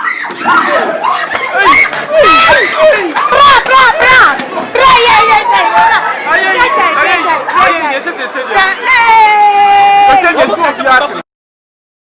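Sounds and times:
men shouting excitedly: 0:01.5 - 0:07.8, 0:08.6 - 0:10.8.

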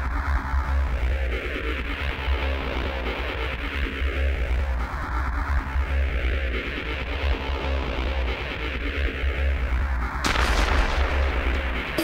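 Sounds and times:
white noise crash impact: 0:10.2 - 0:12.0.

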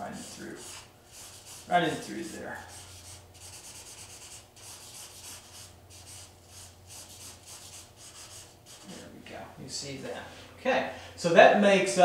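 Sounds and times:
pencil scratching on paper: 0:00.0 - 0:09.0.

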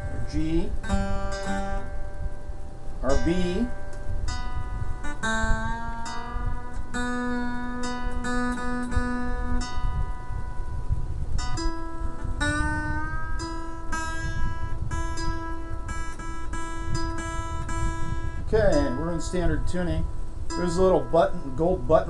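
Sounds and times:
acoustic guitar notes plucked: 0:00.0 - 0:22.0.

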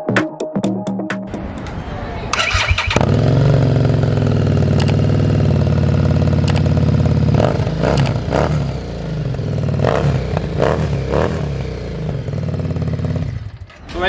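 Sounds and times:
motorcycle starter cranking: 0:02.3 - 0:03.6, 0:04.3 - 0:05.3, 0:06.2 - 0:06.9
motorcycle throttle blips: 0:02.3 - 0:13.8
motorcycle engine idling: 0:02.4 - 0:13.9.

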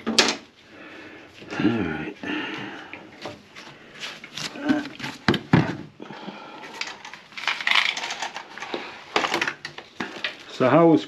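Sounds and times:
hard objects knocking and clattering: 0:04.5 - 0:06.0, 0:06.8 - 0:10.4.

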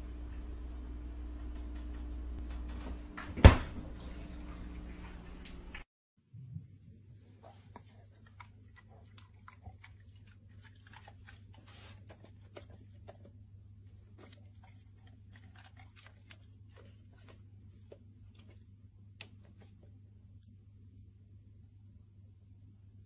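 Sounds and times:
steady low hum: 0:00.0 - 0:23.0
dog chewing: 0:07.7 - 0:17.5.

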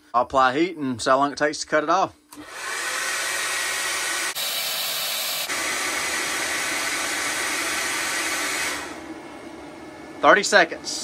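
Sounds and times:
hair dryer blowing: 0:02.3 - 0:10.9.

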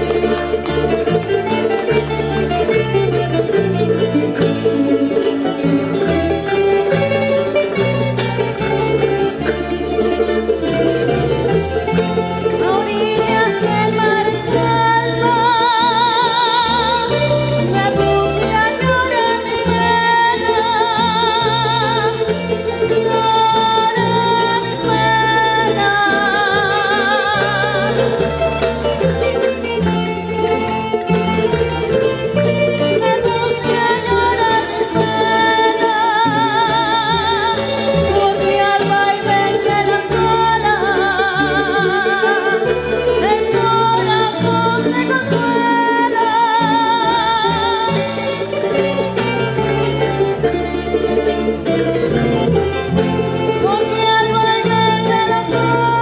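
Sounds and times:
accordion: 0:00.0 - 0:56.0
folk ensemble strumming and plucking: 0:00.0 - 0:56.0
guitar and lute: 0:00.0 - 0:56.0
woman singing: 0:12.0 - 0:29.4, 0:32.6 - 0:50.2, 0:51.8 - 0:56.0.

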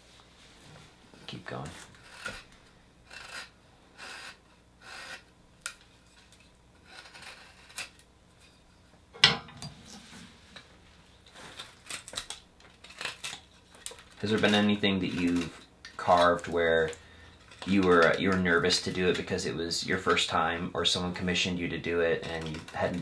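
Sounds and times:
knife scraping bark: 0:01.8 - 0:08.0, 0:11.5 - 0:19.3, 0:22.2 - 0:23.0.

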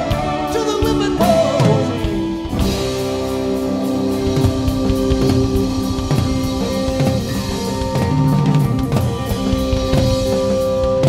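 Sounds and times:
busy drumming: 0:00.0 - 0:11.0
rock band playing: 0:00.0 - 0:11.0.

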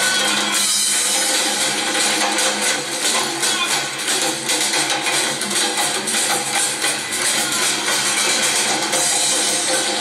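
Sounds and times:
hand drums playing rhythm: 0:00.0 - 0:10.0.

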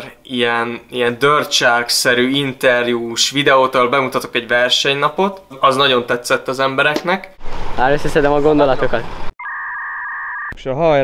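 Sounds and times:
two-tone electronic bleep: 0:09.4 - 0:10.6.

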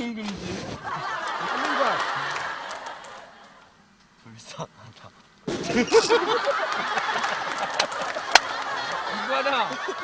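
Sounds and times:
men laughing hard: 0:00.8 - 0:03.4, 0:05.5 - 0:10.0.

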